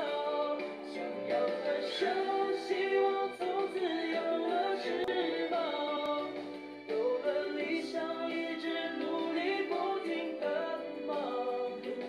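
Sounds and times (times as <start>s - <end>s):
instrumental accompaniment: 0.0s - 12.0s
person singing a song: 0.0s - 12.0s.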